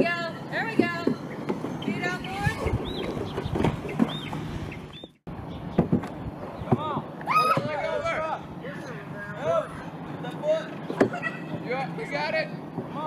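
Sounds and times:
people shouting and calling out: 6.8 - 13.0.

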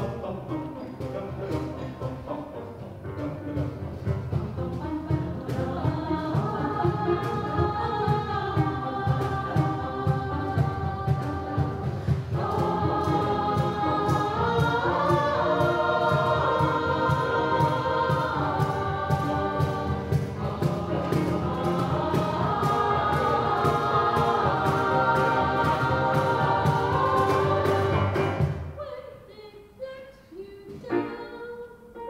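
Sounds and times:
choir singing: 0.0 - 28.8
piano accompaniment: 0.0 - 28.8, 30.8 - 32.0
drums and cymbals: 3.1 - 28.8.

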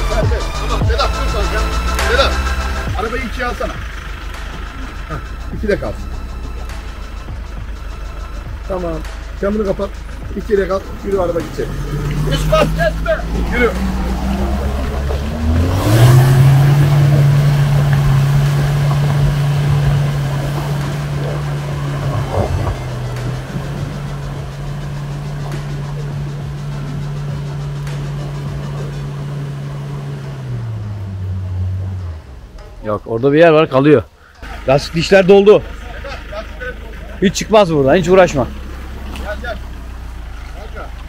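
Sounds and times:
truck engine revving under load: 0.0 - 41.0.

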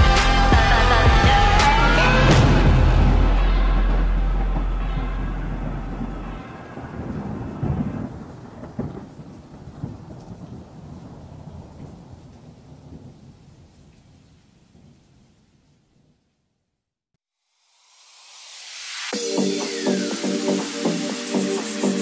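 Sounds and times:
thunder rumbling: 0.0 - 15.0
sharp thunder cracks: 2.3 - 13.2
rain: 2.4 - 16.4, 17.5 - 20.1.

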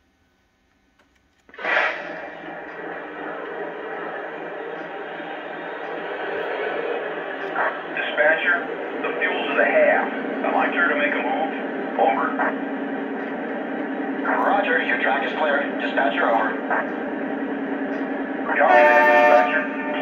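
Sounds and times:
model train diesel engine sound: 1.0 - 20.0
radio-style crew chatter: 1.5 - 20.0.

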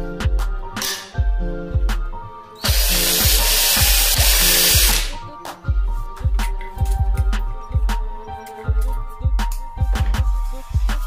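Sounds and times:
background music with steady beat: 0.0 - 11.0
cordless drill running: 2.6 - 5.2.

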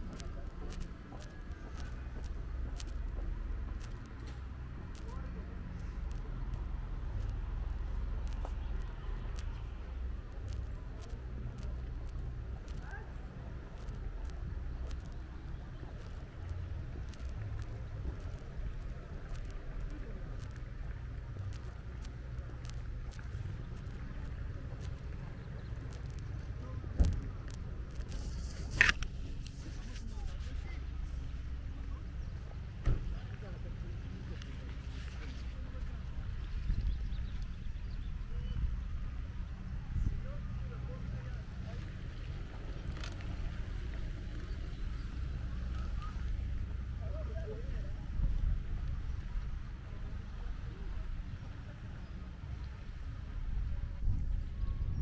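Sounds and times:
footsteps on paved path: 0.0 - 54.4
low steady rumble: 0.0 - 55.0.

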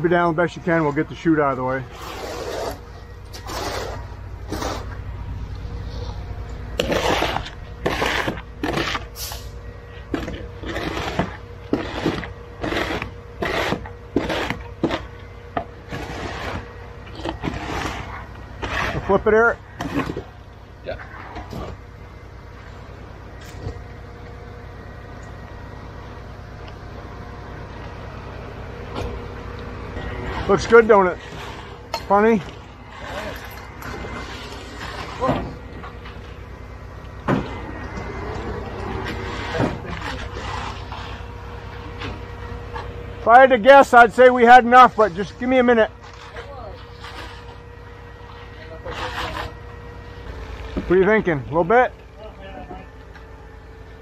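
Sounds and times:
truck engine humming: 0.0 - 54.0
hand tools scraping wet concrete: 1.5 - 5.0, 6.8 - 15.1, 15.8 - 20.3, 30.2 - 35.6, 38.8 - 42.1, 44.0 - 49.6.

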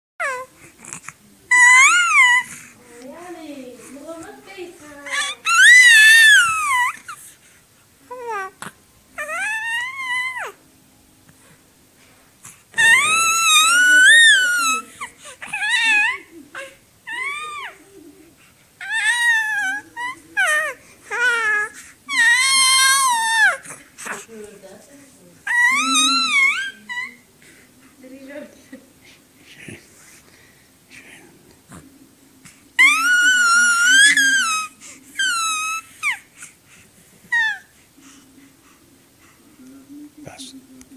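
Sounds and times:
infant crying: 0.2 - 2.7, 4.8 - 7.2, 8.1 - 10.6, 12.8 - 18.1, 18.8 - 24.3, 25.5 - 27.2, 32.8 - 36.3, 37.3 - 37.7.

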